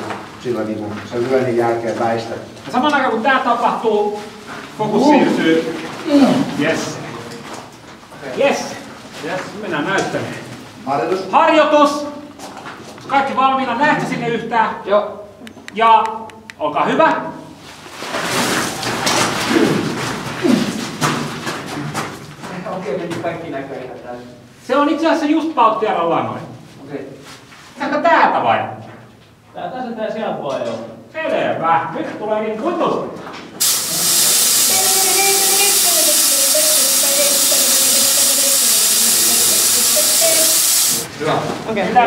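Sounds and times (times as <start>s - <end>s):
fog machine hissing: 33.6s - 41.1s.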